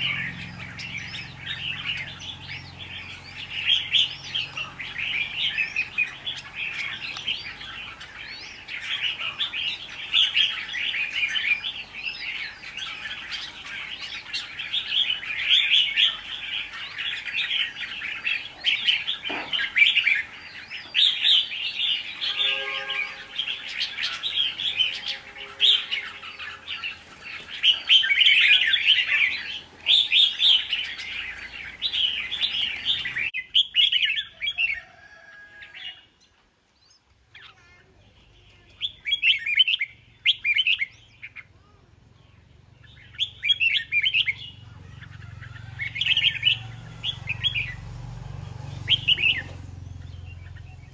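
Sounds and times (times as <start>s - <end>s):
bird chirping song: 0.0s - 50.9s.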